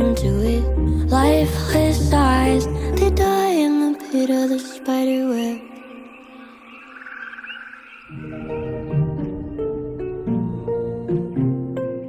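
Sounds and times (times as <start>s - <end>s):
bass and plucked notes: 8.2s - 12.0s.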